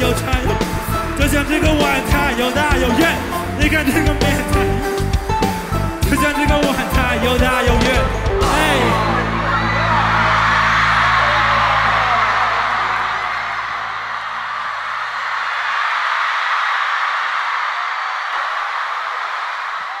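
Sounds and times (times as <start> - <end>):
band holding low chord: 8.0 - 14.4
crowd cheering and screaming: 8.4 - 20.0.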